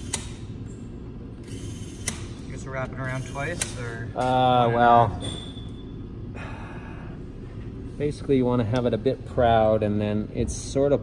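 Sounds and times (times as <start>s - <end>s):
steady low hum: 0.0s - 11.0s
soft breathing: 6.3s - 7.6s.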